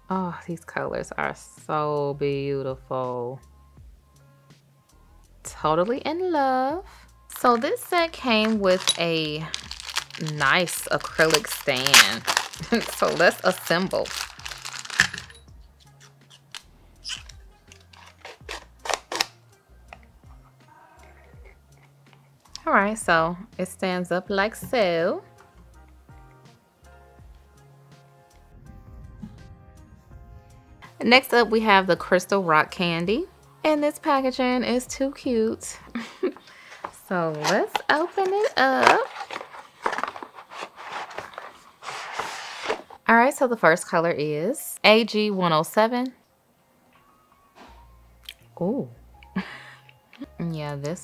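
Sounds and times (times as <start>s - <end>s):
soft background music: 0.0s - 51.0s
packaging clicks and taps: 7.3s - 15.4s, 16.3s - 20.1s, 36.3s - 41.5s
packaging rustling: 7.3s - 15.4s, 16.0s - 19.4s, 36.4s - 43.0s.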